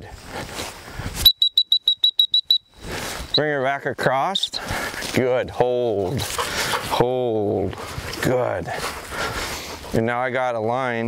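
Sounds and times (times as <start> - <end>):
dog whistle blasts: 1.2 - 2.8.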